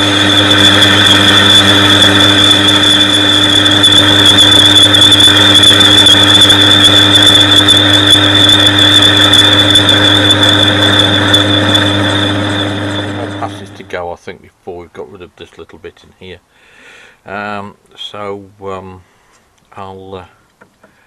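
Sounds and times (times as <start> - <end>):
cutting tool squealing on metal disc: 0.0 - 13.9
lathe motor hum: 0.0 - 13.9.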